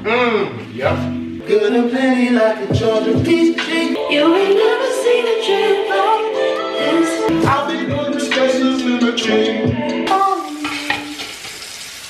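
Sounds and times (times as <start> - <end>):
tap water running into sink: 10.5 - 12.0.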